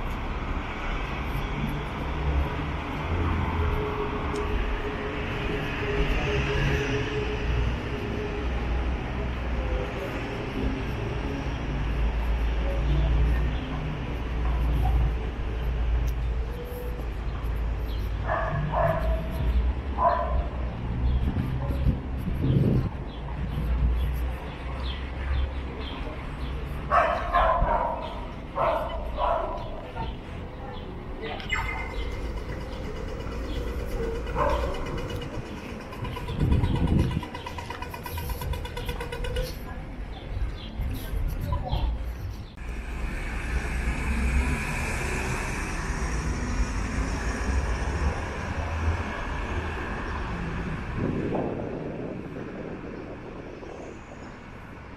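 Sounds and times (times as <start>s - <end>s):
vehicle passing: 0.0s - 52.8s
low city rumble: 0.0s - 54.9s.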